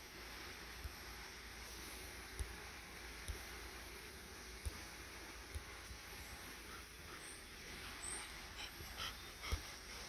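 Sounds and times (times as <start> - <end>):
dog panting: 6.5 - 10.0.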